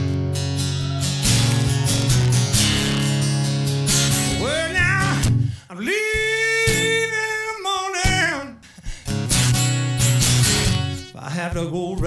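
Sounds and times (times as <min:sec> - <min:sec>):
acoustic guitar strummed blues rhythm: 0:00.0 - 0:12.0.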